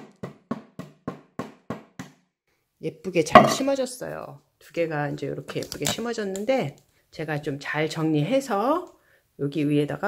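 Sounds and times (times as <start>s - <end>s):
ceramic pot knocking on hard surface: 3.3s - 3.7s.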